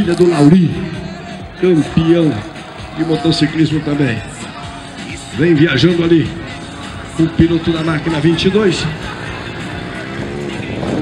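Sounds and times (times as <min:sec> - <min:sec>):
motorbike engines revving: 0:00.0 - 0:11.0
music over loudspeakers: 0:00.0 - 0:11.0.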